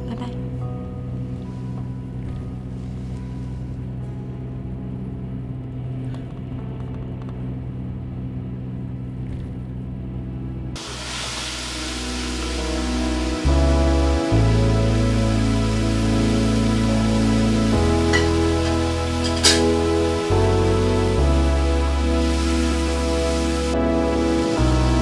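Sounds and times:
soft background music: 0.0s - 9.2s, 10.0s - 25.0s
bus engine rumble: 0.0s - 25.0s.

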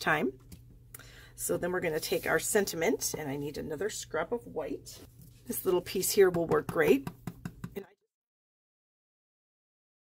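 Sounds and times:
rubber stamp tapping on ink pad: 6.2s - 7.8s.

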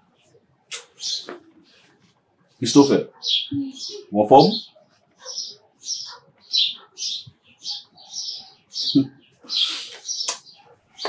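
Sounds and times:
bird chirping: 0.0s - 1.9s, 2.6s - 11.0s.

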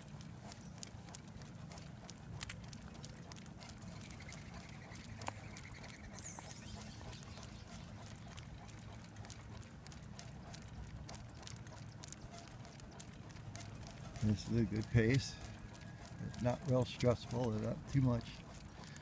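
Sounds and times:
dog nails clicking on blacktop: 0.0s - 6.4s, 7.0s - 19.0s
cart wheels rumbling on road: 0.0s - 19.0s.

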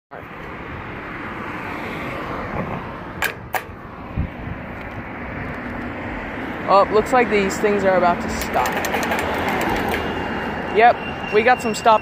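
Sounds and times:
road traffic passing: 0.1s - 12.0s
sharp clicks: 8.3s - 10.1s.

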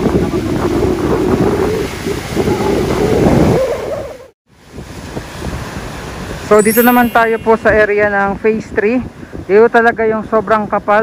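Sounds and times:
wind buffeting microphone: 0.0s - 6.5s.

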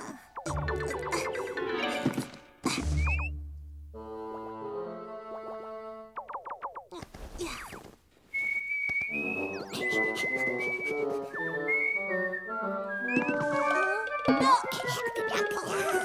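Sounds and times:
light music with whistle melody: 2.8s - 6.6s, 8.4s - 16.0s.

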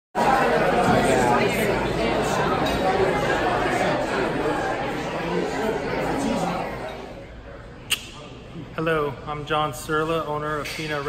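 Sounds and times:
hubbub of diners talking: 0.2s - 11.0s.

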